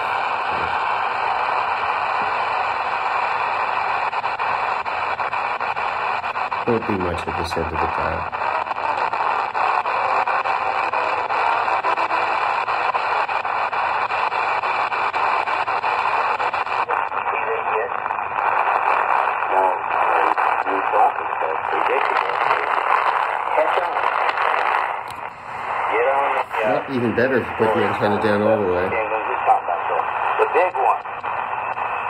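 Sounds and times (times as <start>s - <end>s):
faint radio voices: 0.0s - 4.4s, 5.6s - 32.0s
radio band hiss: 0.0s - 32.0s
clear radio voice: 6.7s - 8.3s, 16.4s - 18.1s, 19.4s - 24.9s, 25.6s - 31.2s.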